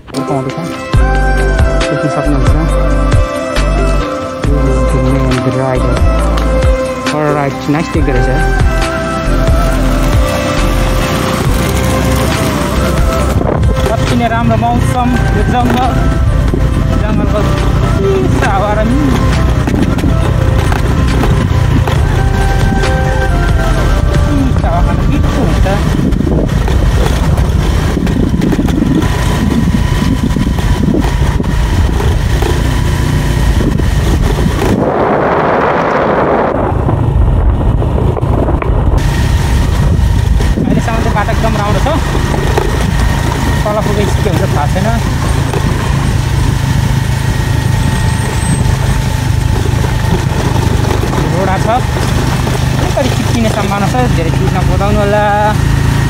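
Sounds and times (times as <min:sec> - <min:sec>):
motorcycle engine running: 0:00.0 - 0:56.0
wind buffeting microphone: 0:07.8 - 0:56.0.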